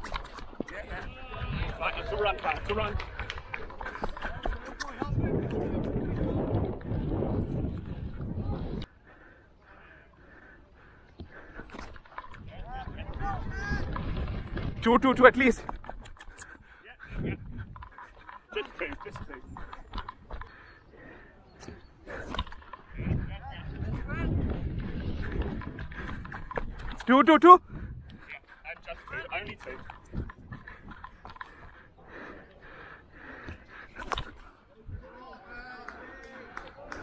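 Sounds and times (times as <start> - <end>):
running footsteps: 0.0 - 9.4, 10.1 - 37.0
heavy breathing: 7.9 - 12.5, 15.6 - 37.0
person breathing hard: 8.7 - 12.1, 19.5 - 23.2, 29.8 - 35.1.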